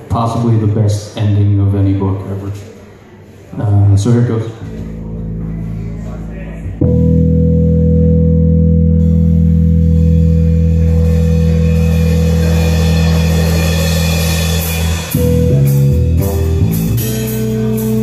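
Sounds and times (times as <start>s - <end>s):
double bass: 3.6s - 18.0s
electric bass: 3.6s - 18.0s
cymbal wash: 9.1s - 18.0s.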